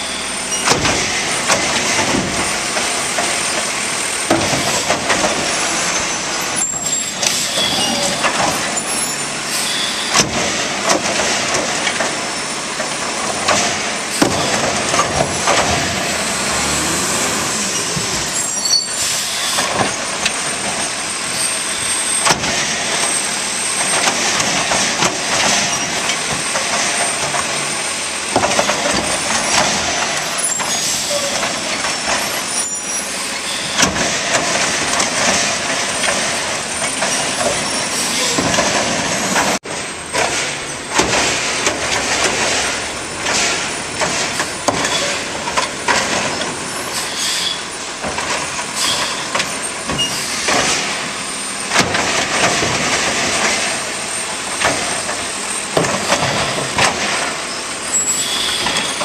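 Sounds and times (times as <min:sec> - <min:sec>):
garbage truck engine revving: 0:00.0 - 0:59.0
hydraulic arm lifting: 0:00.0 - 0:59.0
trash carts banging: 0:00.0 - 0:59.0.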